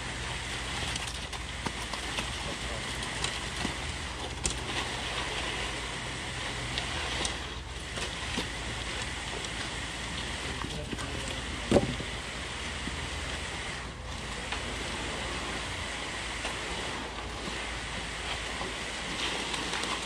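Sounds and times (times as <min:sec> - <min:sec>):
concrete pouring and sloshing: 0:00.0 - 0:20.0
concrete pump droning: 0:00.0 - 0:20.0
rakes spreading concrete: 0:00.0 - 0:20.0.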